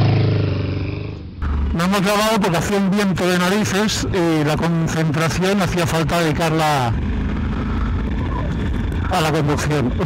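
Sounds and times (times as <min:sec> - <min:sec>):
motorcycle engine drone: 0:00.0 - 0:10.0
road noise: 0:00.0 - 0:10.0.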